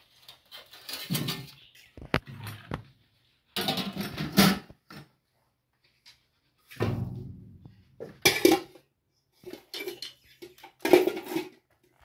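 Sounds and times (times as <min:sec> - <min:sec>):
metal dishes and utensils clattering: 0:00.2 - 0:02.7, 0:03.5 - 0:05.1, 0:06.7 - 0:11.8.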